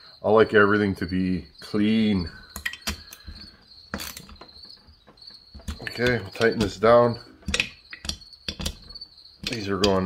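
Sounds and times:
metal engine parts clicking: 2.5 - 10.0.

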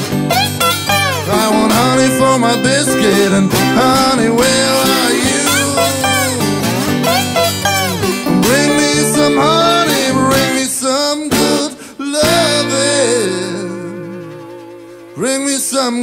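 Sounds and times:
slide guitar playing: 0.0 - 16.0.

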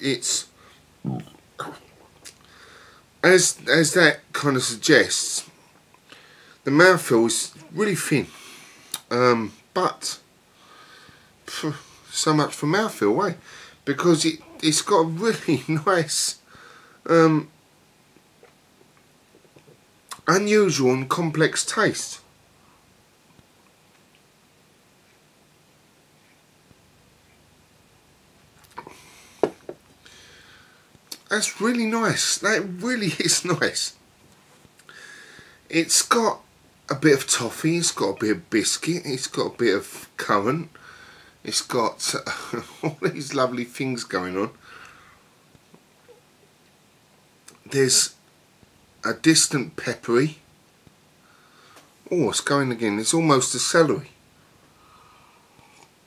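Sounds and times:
man clearing his throat: 1.0 - 1.9
man's lip and tongue smacks: 2.2 - 2.4.

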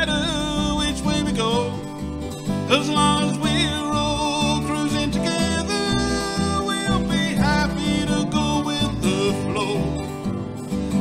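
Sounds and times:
acoustic guitar: 0.0 - 11.0
plucked upright bass: 0.0 - 11.0
second guitar: 0.0 - 11.0.

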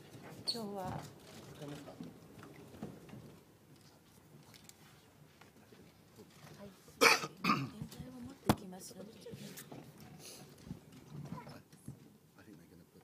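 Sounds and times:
person coughing: 7.0 - 7.7.

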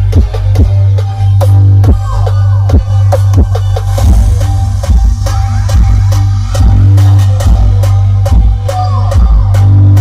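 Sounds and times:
heavy bass: 0.0 - 10.0
loud electronic dance music: 0.0 - 10.0.

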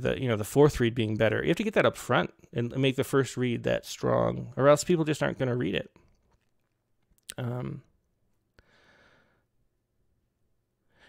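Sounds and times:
faint breath: 8.6 - 9.6.

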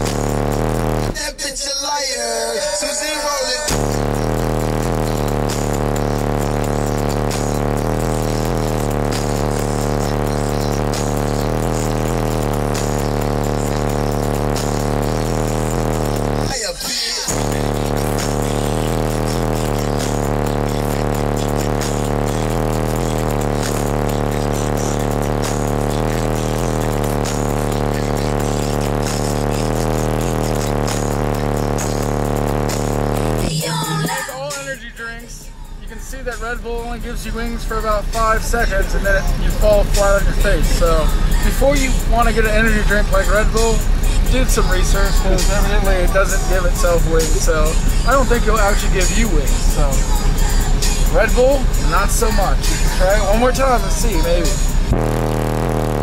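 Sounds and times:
bass-heavy music with vocals: 0.0 - 56.0.

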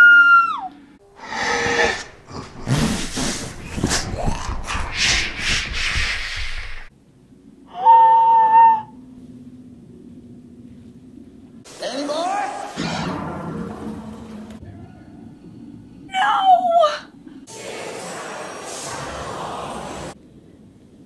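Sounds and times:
harsh breathy noise: 1.2 - 6.9
faint low hum: 6.9 - 11.7
boy screaming: 7.7 - 8.9.

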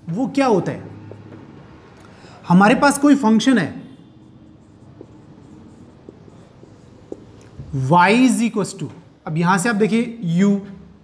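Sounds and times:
marker scratching on whiteboard: 2.9 - 8.2.

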